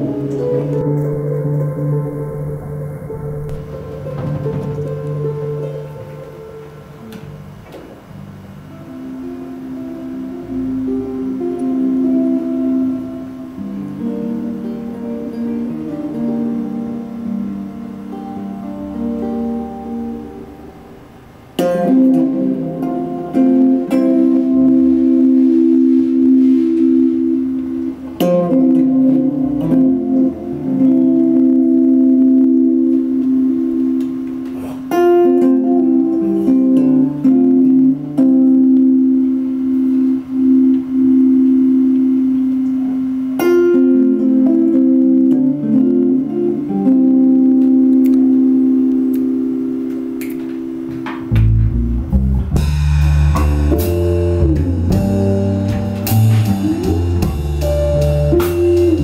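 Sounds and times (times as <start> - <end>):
electric guitar strummed chords: 0.0 - 59.0.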